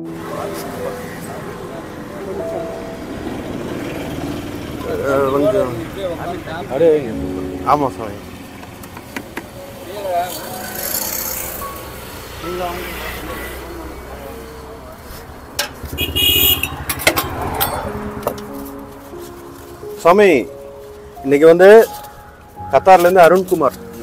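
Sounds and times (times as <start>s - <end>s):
people talking: 0.0s - 3.0s, 4.8s - 8.2s
passing road traffic: 0.0s - 24.0s.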